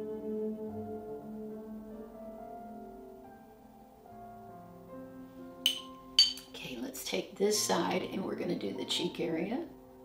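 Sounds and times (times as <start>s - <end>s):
soft piano music: 0.0s - 10.0s
stone tool clinking on hard surface: 5.7s - 6.5s.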